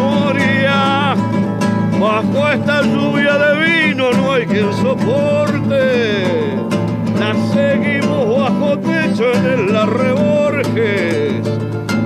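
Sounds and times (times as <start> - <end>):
acoustic guitar strummed and picked: 0.0 - 12.0.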